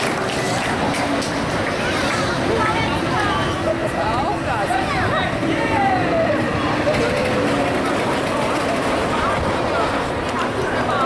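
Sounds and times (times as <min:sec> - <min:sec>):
amusement ride machinery: 0:00.0 - 0:11.0
indistinct voices: 0:00.0 - 0:11.0.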